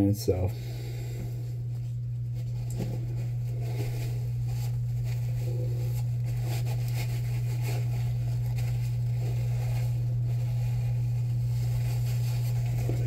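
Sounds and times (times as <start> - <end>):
steady low hum: 0.0 - 13.0
paper towel and gloves rustling: 0.7 - 13.0.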